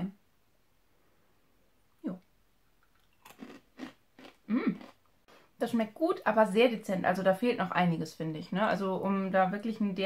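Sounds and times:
person chewing crunchy granola: 2.9s - 5.5s.

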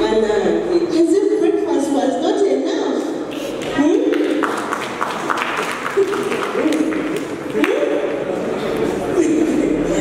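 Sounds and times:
audience applause: 4.4s - 7.8s.

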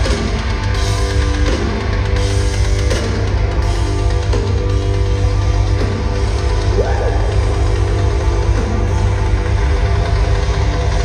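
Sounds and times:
live hard rock band: 0.0s - 11.0s.

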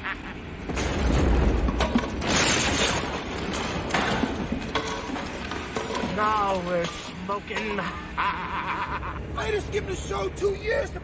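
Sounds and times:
debris clattering: 0.6s - 8.2s.

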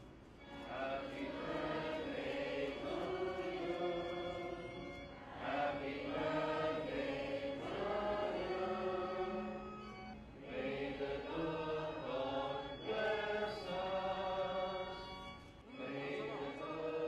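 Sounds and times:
congregation singing a hymn: 0.0s - 17.0s.

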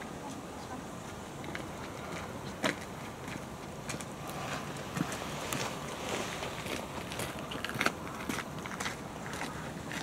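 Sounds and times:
footsteps crunching on gravel and leaves: 2.6s - 10.0s.

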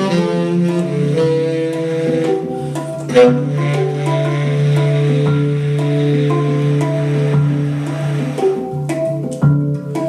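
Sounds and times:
tenor saxophone: 0.0s - 8.2s
hang drum notes: 0.0s - 10.0s.

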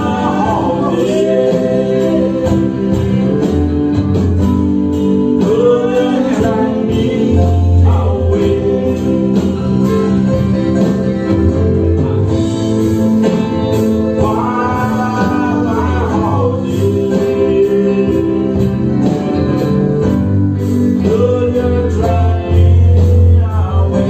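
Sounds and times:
bending lead guitar line: 0.0s - 24.0s
live band playing slow ballad: 0.0s - 24.0s.

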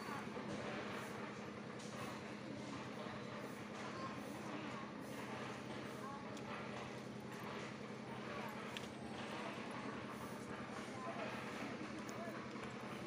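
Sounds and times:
faint distant voices: 0.0s - 13.0s.

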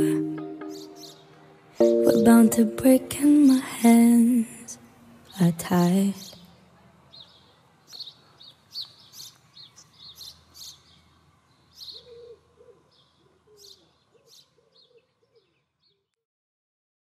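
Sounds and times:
birds chirping: 0.0s - 4.4s, 5.1s - 16.1s.

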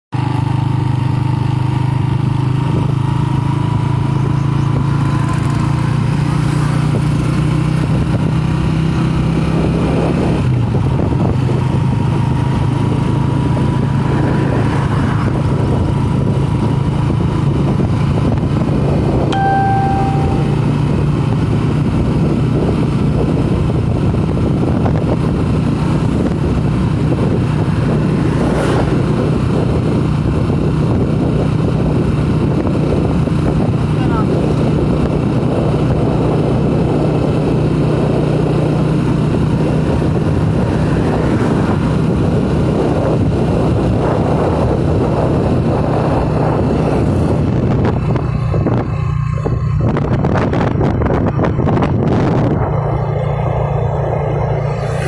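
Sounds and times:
wind and road noise: 0.1s - 55.0s
vehicle engine running: 0.2s - 55.0s
brief high tone: 19.3s - 21.2s.

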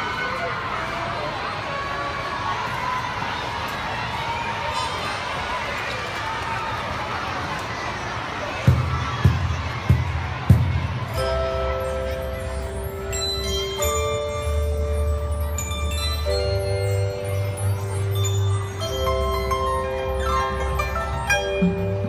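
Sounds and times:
children talking: 0.0s - 22.0s
deep drum beats: 8.7s - 11.2s.

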